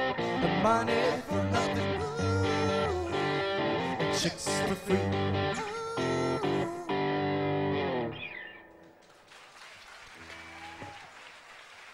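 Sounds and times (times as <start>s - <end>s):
guitar tone sliding upward: 0.0s - 8.7s
faint applause: 8.8s - 11.9s.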